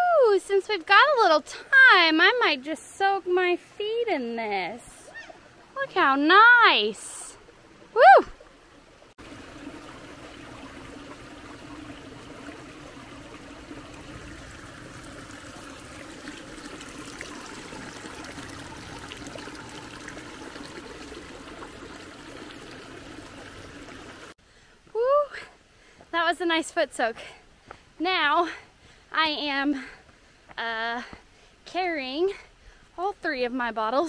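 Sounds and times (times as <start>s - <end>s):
stream trickling over stones: 0.2s - 24.4s.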